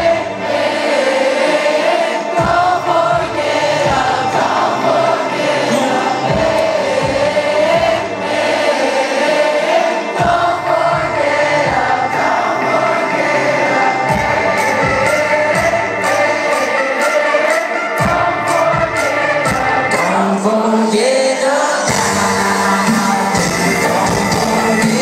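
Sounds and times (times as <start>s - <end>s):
crowd singing in unison: 0.0s - 25.0s
live band music: 1.6s - 8.6s, 9.3s - 25.0s.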